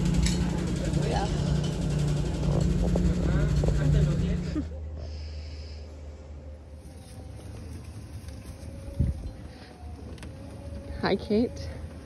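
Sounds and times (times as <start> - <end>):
utility cart rumbling over grass: 0.0 - 4.6
wind on microphone: 8.9 - 9.4.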